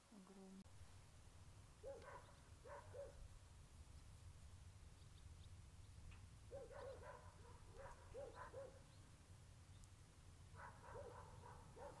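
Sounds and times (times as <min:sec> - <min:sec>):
dog barking faintly: 0:01.8 - 0:03.2, 0:06.5 - 0:08.9, 0:10.5 - 0:12.0.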